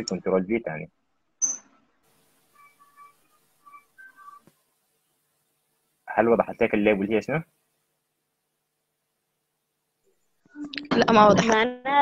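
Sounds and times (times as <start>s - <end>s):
faint whistled notes: 2.5s - 4.4s.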